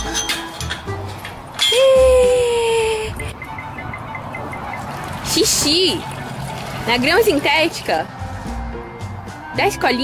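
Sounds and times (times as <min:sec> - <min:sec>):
background music: 0:00.0 - 0:10.0
gate squealing: 0:01.6 - 0:02.1.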